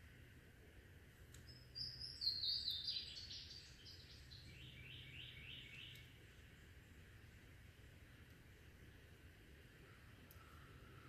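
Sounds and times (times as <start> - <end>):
faint steady background noise: 0.0 - 11.0
songbird singing: 1.2 - 9.2.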